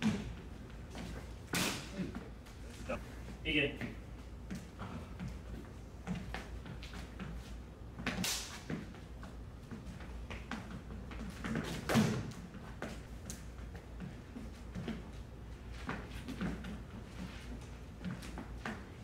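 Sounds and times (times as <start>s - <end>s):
low hum of hall: 0.0s - 19.0s.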